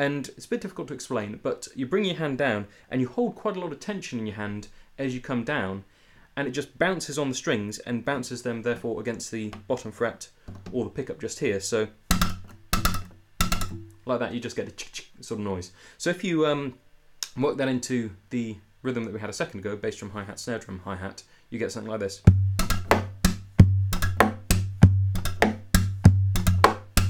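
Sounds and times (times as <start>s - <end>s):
strings clicking against frets: 12.0s - 14.0s, 22.3s - 27.0s
guitar strings snapping clicks: 12.1s - 14.0s
low guitar body ring: 12.1s - 14.0s
palm strikes on guitar body: 12.1s - 14.0s, 22.6s - 27.0s
slaps on guitar: 12.1s - 14.0s, 22.6s - 27.0s.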